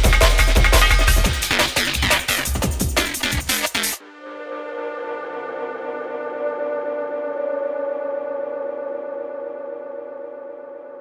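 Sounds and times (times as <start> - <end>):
synthesizer drone: 3.2 - 11.0.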